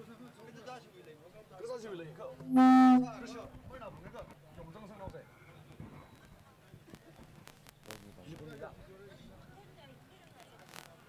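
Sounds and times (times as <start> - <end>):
low horn blast: 2.4 - 3.4.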